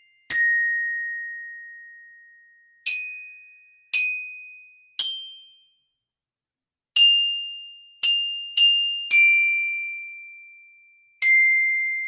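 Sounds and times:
glockenspiel notes: 0.0 - 5.7, 7.0 - 12.0.

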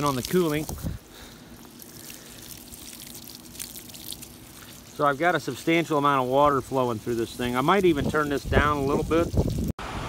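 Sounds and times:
water pouring and splashing: 0.0 - 9.8.

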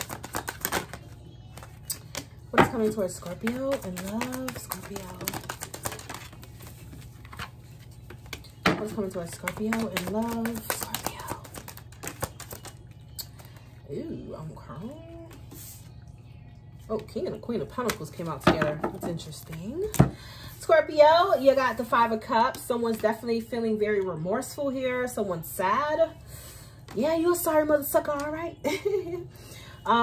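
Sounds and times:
cards being shuffled: 0.0 - 13.6.

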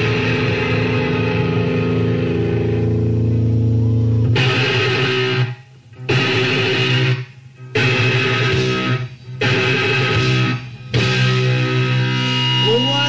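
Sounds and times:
punk rock band playing live: 0.0 - 3.1, 4.2 - 13.0
loud electric guitar chords: 0.0 - 13.0.

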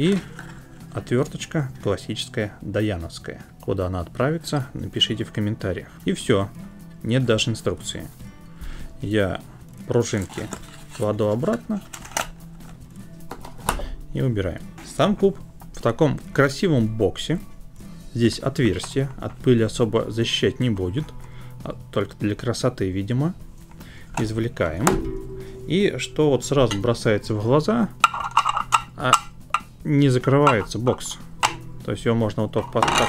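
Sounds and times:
plastic box clicks and clacks: 10.2 - 12.4.

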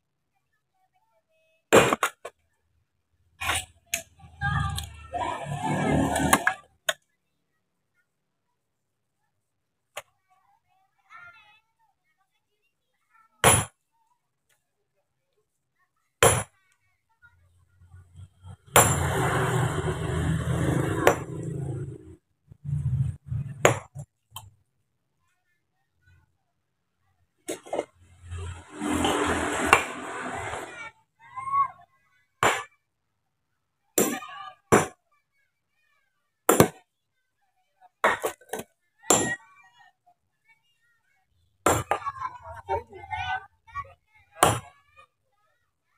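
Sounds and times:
sledgehammer striking stone: 1.8 - 2.3, 13.4 - 13.8, 16.2 - 16.5, 18.7 - 19.3, 23.6 - 24.0, 32.4 - 32.7, 34.0 - 35.0, 36.5 - 36.8, 38.0 - 39.4, 41.7 - 42.0, 44.4 - 44.7.

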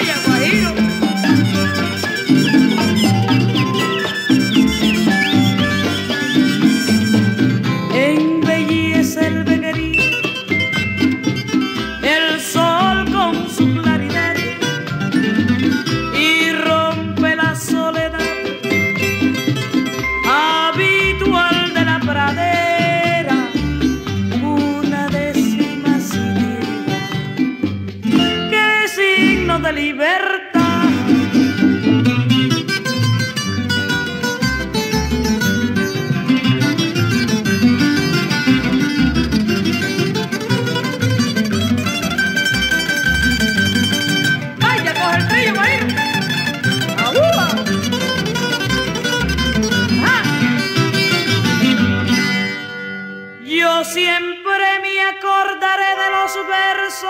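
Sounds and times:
plucked guitar music: 0.0 - 53.6.

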